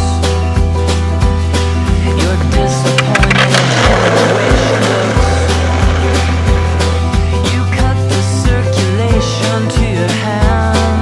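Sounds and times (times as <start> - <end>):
rock song with steady beat: 0.0 - 11.0
skateboard wheels rolling on asphalt: 2.0 - 8.9.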